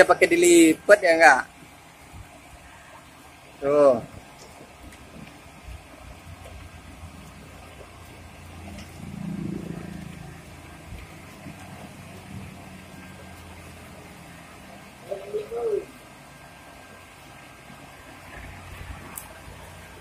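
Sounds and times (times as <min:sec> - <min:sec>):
van engine running at low speed: 0:00.0 - 0:20.0.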